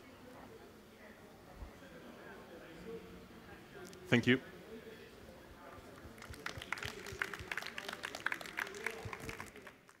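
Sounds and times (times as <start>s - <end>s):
audience applauding: 6.1s - 10.0s.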